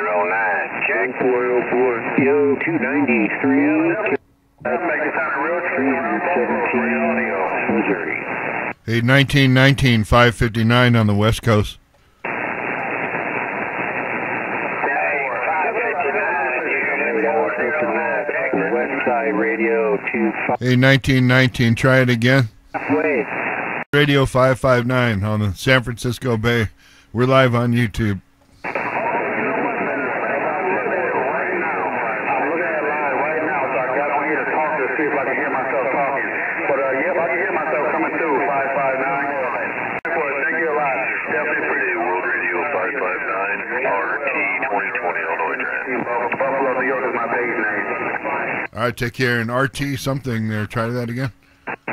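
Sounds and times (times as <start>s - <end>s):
radio static hiss: 0.0s - 51.9s
distant voice over radio: 28.7s - 48.7s.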